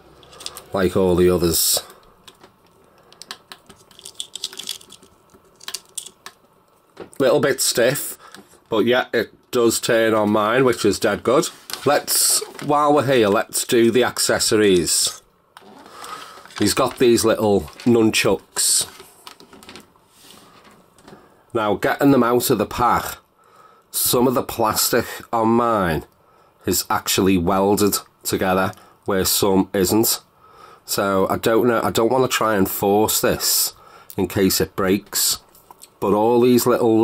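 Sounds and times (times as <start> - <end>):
plastic toy clicks and handling: 2.3 - 6.4.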